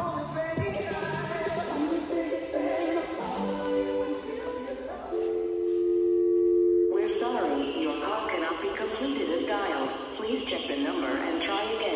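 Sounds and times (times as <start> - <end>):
pop song long held note: 0.0 - 7.9.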